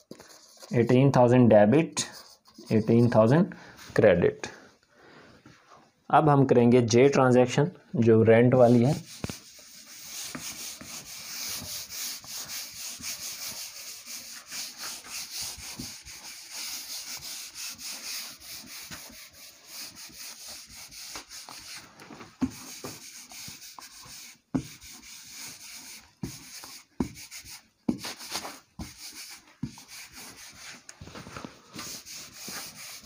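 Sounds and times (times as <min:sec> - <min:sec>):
eraser rubbing on whiteboard: 0:00.0 - 0:00.8, 0:02.0 - 0:03.4, 0:08.6 - 0:30.9, 0:31.7 - 0:33.0.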